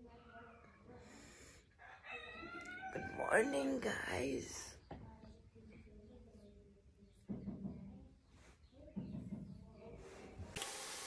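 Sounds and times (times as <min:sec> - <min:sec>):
rooster crowing: 0:01.8 - 0:03.8.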